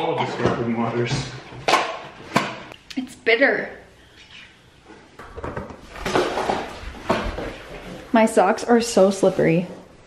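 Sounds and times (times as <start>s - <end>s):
socked footsteps sliding on floor: 5.8s - 10.0s.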